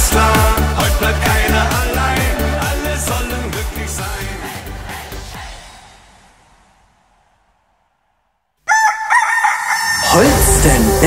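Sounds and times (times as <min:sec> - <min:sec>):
band music with a beat: 0:00.0 - 0:05.6
drawn-out crowing call: 0:08.6 - 0:10.2.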